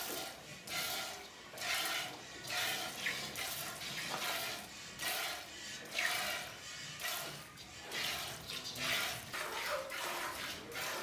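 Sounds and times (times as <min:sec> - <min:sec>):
milk squirting into metal pot: 0:00.0 - 0:11.0.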